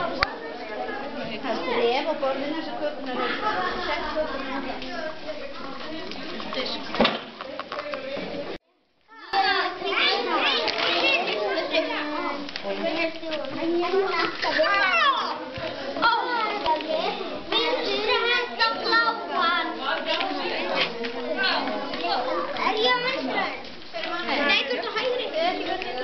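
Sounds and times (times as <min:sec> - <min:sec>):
children talking and calling out: 0:00.0 - 0:26.0
children shouting and squealing: 0:09.1 - 0:12.4, 0:13.8 - 0:19.8.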